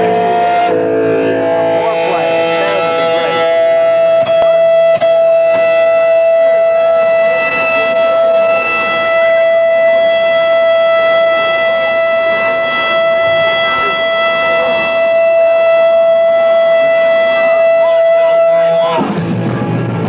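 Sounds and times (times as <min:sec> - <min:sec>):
electric guitar feedback: 0:00.0 - 0:20.0.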